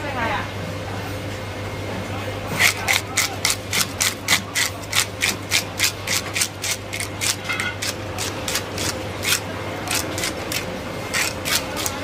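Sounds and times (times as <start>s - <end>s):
fish scaler scraping scales: 2.5s - 12.0s.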